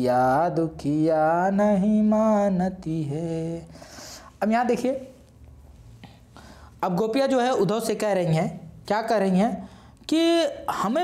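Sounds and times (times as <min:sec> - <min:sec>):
low steady hum: 0:00.0 - 0:11.0
faint soft hiss: 0:00.6 - 0:10.7
man speaking: 0:04.4 - 0:05.2.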